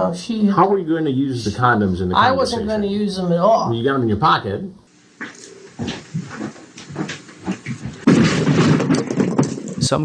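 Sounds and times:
scuffling and knocks: 0:05.2 - 0:10.0
wooden stool knocked onto floor: 0:07.8 - 0:09.8.

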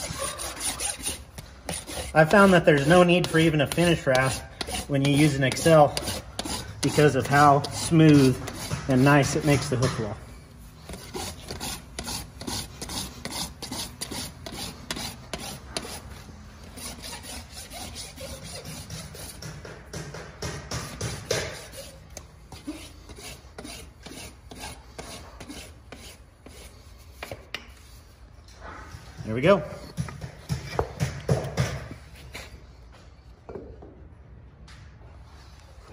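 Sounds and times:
hoof rasp scraping: 0:00.0 - 0:19.6, 0:20.8 - 0:32.9.

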